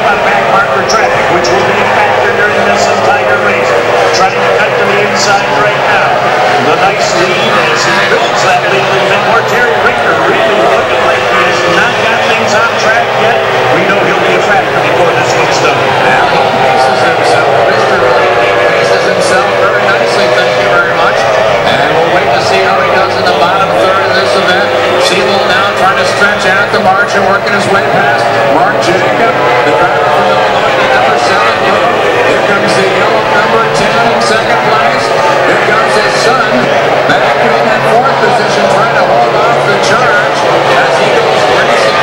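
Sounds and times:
racing outboard engine: 0.0 - 42.0.

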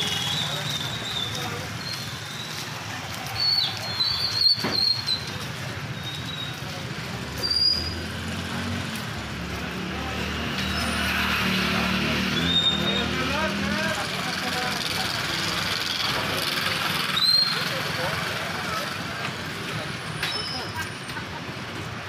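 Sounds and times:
passing motor vehicles: 0.0 - 22.0
voices: 0.0 - 22.0.

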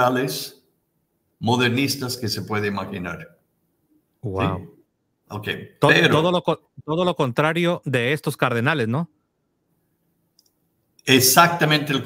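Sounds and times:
faint click: 10.3 - 11.0.

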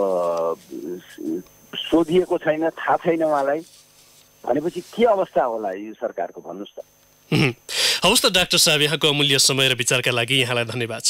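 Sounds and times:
man speaking: 0.0 - 3.7, 4.4 - 11.0.

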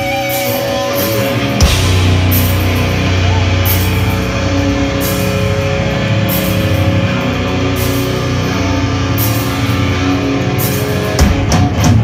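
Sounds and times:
live heavy rock band: 0.0 - 12.0
cymbal crashes: 1.6 - 10.1.

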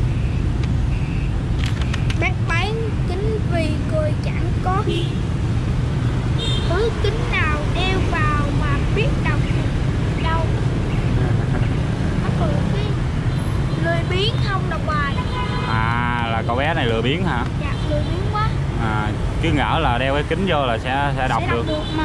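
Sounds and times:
city street traffic rumble: 0.0 - 22.0
voices talking: 2.0 - 5.2, 6.6 - 13.1, 13.7 - 22.0.

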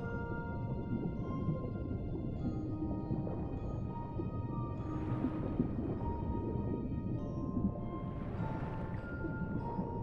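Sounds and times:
underwater low rumble: 0.0 - 10.0.

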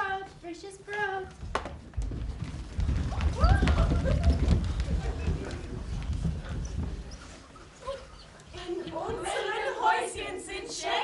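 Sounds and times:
scuffling on stage floor: 1.0 - 9.5
children squeaking: 3.4 - 8.5.

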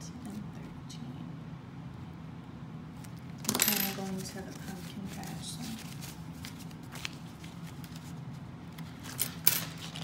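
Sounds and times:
low steady hum: 0.0 - 10.0
paper banknotes rustling: 3.6 - 10.0.

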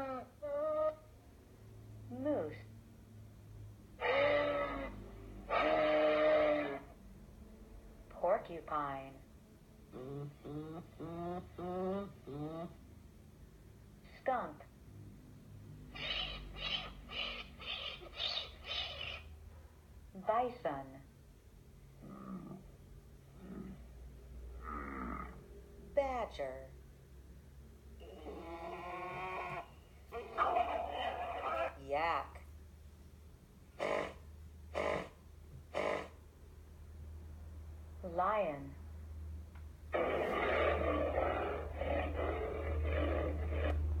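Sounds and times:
skunk calls: 4.0 - 6.8, 15.9 - 19.3
recorded lion roaring and growling: 4.0 - 7.0, 22.0 - 22.7, 23.4 - 23.9, 24.5 - 25.4, 28.0 - 31.8, 39.9 - 44.0.

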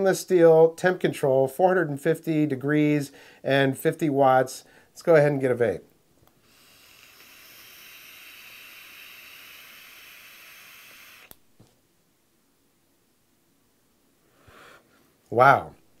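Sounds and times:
e-cigarette airy hiss: 6.3 - 11.5.

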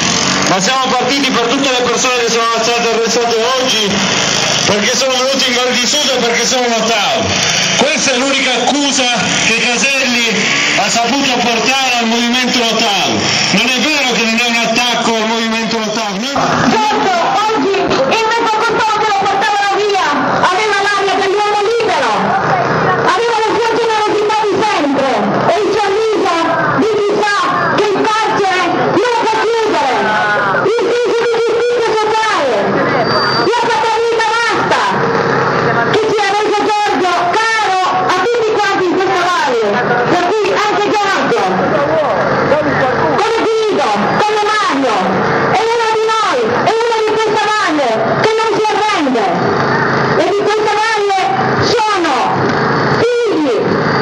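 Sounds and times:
crowd shouting a chant: 16.4 - 20.6.

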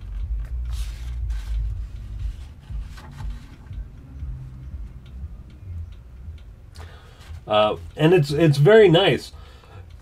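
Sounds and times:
faint clicks from handling pages: 0.0 - 3.7
low rumble: 0.0 - 6.8.

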